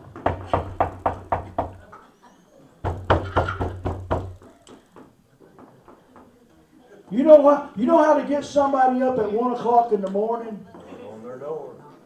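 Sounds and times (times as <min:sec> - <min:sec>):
hard knocking on wood: 0:00.1 - 0:01.8, 0:02.8 - 0:04.4.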